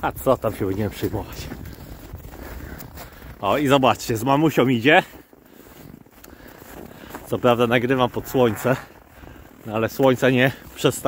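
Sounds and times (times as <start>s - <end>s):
footsteps crunching in snow: 0.0s - 11.0s.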